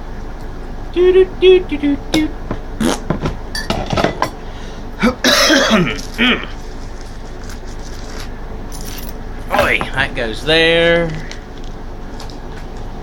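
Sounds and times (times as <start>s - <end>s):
objects clinking on hard surfaces: 8.7s - 9.8s.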